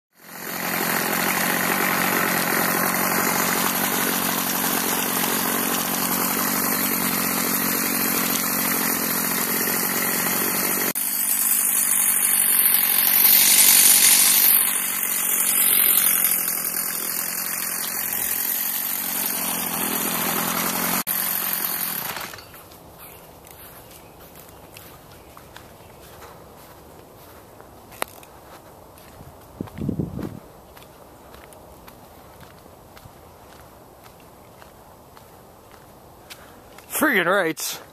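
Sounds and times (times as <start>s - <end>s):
string trimmer engine running: 0.2s - 33.6s.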